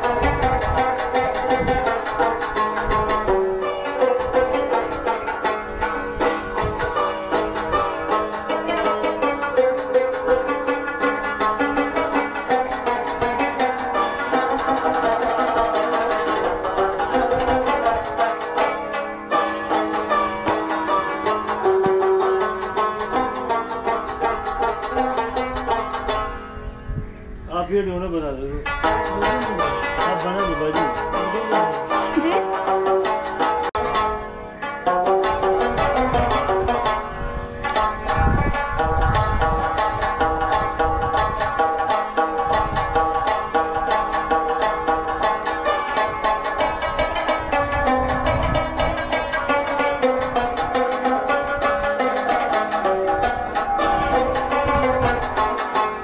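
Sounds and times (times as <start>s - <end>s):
rubab plucked melody: 0.0s - 56.0s.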